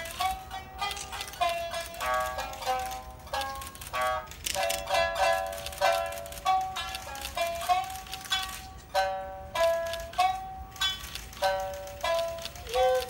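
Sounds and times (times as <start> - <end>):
plucked shamisen notes: 0.0 - 13.0.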